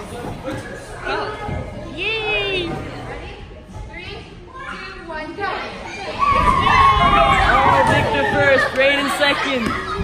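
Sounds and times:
children shouting: 5.9s - 10.0s.

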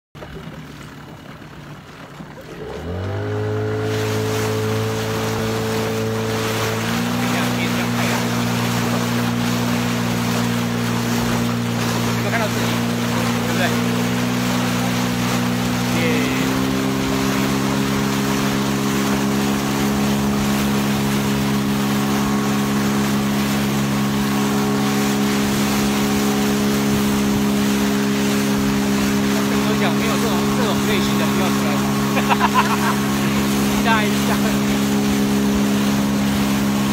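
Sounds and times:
wind: 0.0s - 36.9s
outboard motor running: 0.1s - 36.9s
rushing water: 0.2s - 36.9s.

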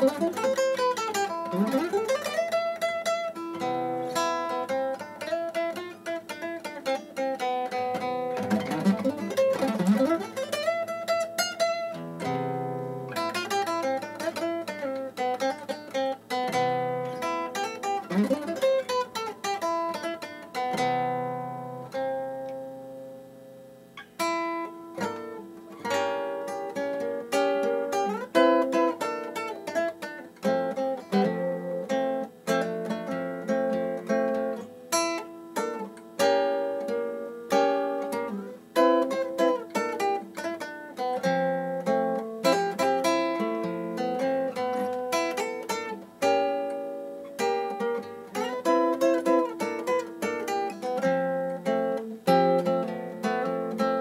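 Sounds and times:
classical guitar playing: 0.0s - 54.0s.

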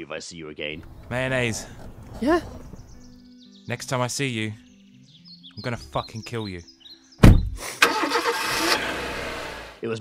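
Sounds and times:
car engine revving and driving off: 7.8s - 9.8s.

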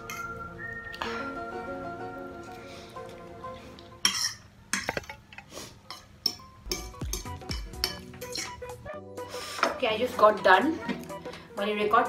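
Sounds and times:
fork scraping a plate: 7.8s - 8.7s.

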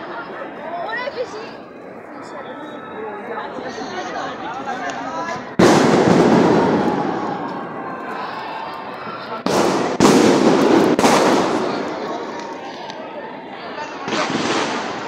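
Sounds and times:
fireworks bursting: 5.6s - 7.8s, 9.3s - 12.8s, 13.9s - 15.0s.

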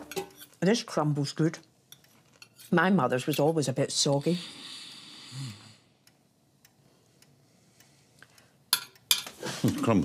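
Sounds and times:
cutlery clicking on china bowls: 8.7s - 9.4s.

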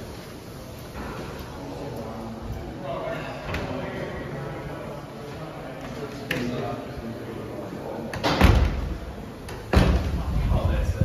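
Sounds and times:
doors banging shut: 8.1s - 10.3s.

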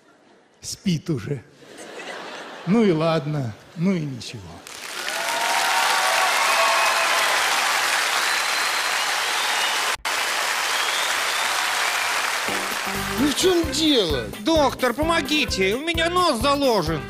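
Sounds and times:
audience applauding: 4.6s - 13.8s
stage music: 6.8s - 17.0s.

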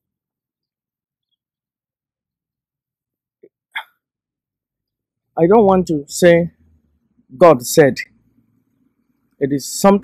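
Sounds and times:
man's mouth sounds: 3.4s - 4.1s.

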